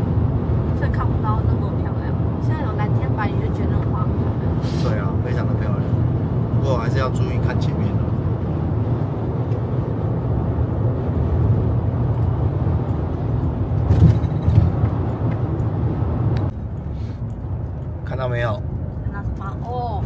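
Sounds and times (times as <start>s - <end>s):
engine and road noise in cabin: 0.0s - 20.0s.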